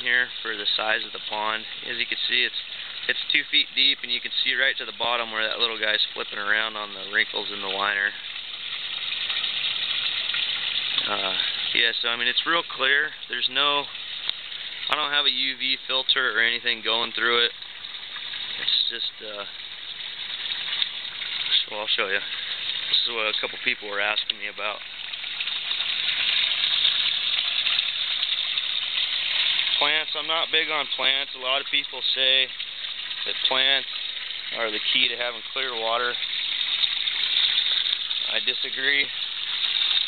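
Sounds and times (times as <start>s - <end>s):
water pouring into pond: 0.0s - 40.0s.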